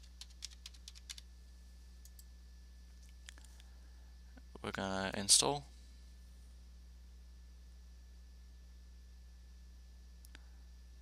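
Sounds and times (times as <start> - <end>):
computer keyboard typing: 0.0 - 1.2.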